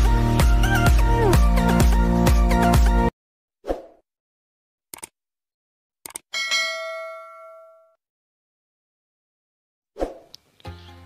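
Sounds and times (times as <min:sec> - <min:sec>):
notification bell ding: 0:06.4 - 0:08.0.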